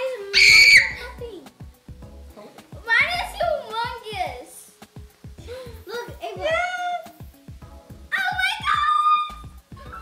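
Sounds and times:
background music: 0.0 - 10.0
girl squealing: 0.3 - 1.0, 8.2 - 10.0.

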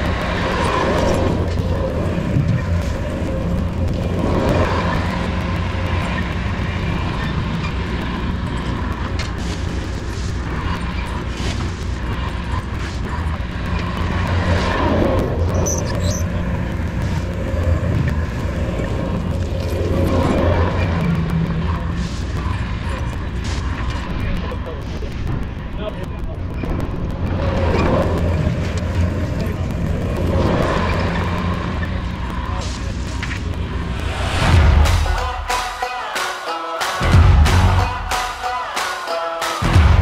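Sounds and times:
heavy machinery diesel engine: 0.0 - 40.0.

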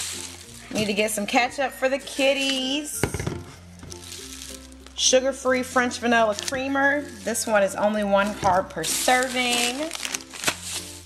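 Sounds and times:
plastic bags crinkling: 0.0 - 5.0, 5.7 - 11.0
soft background music: 0.0 - 11.0.

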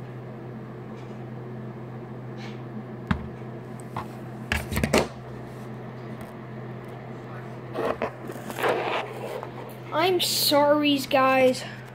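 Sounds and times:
steady low hum: 0.0 - 11.9
knocks of things being handled: 3.1 - 3.4.

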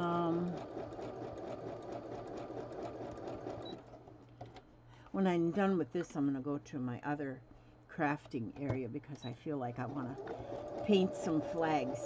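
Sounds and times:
sewing machine stitching: 0.0 - 4.0, 9.8 - 12.0.

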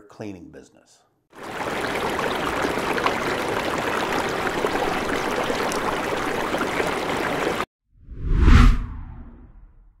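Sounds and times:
rushing water: 1.4 - 7.7
whoosh into deep boom: 8.0 - 10.0.

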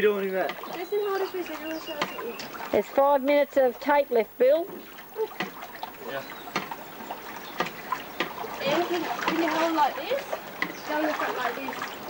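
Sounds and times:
pool water splashing and lapping: 0.0 - 12.0.

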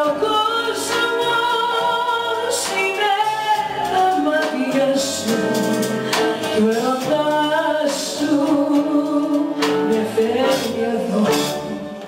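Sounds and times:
band accompanying: 0.0 - 12.0
woman singing: 0.0 - 12.0.

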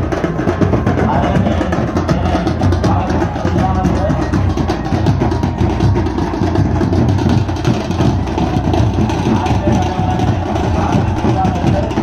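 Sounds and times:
procession drums beating: 0.0 - 12.0.

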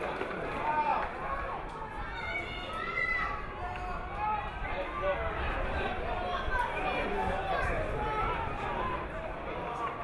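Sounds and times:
open-air background noise: 0.0 - 10.0.

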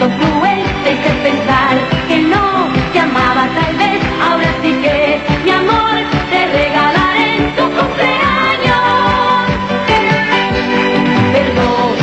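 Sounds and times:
woman singing pop song: 0.0 - 12.0.

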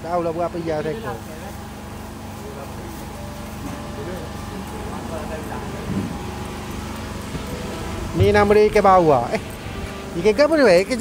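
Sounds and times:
market hall din: 0.0 - 11.0.

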